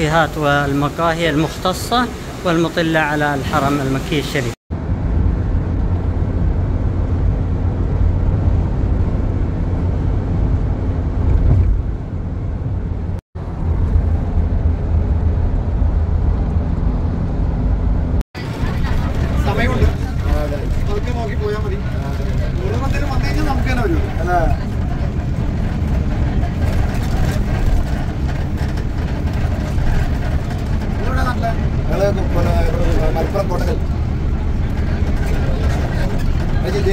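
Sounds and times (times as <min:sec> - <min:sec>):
car road and engine rumble: 0:00.0 - 0:36.9
voices talking: 0:18.4 - 0:27.8.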